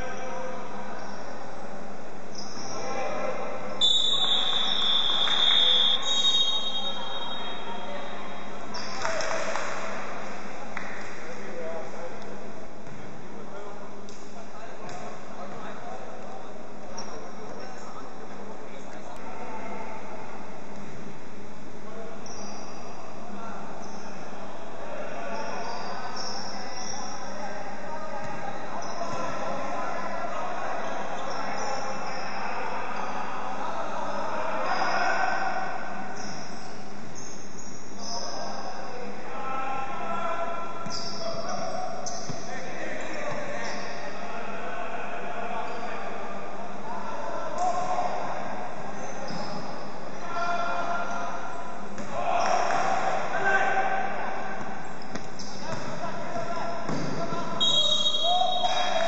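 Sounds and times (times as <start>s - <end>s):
echoing voices in sports hall: 0.0s - 59.0s.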